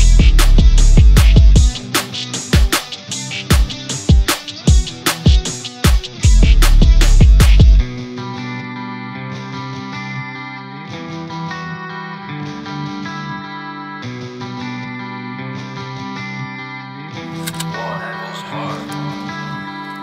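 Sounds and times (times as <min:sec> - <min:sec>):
melodic guitar loop: 0:00.0 - 0:20.0.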